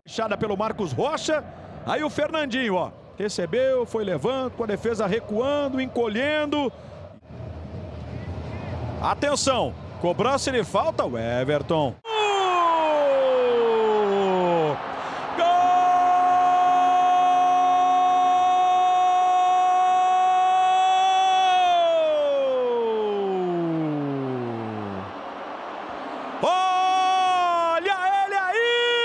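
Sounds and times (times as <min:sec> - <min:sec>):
stadium crowd noise: 0:00.1 - 0:29.0.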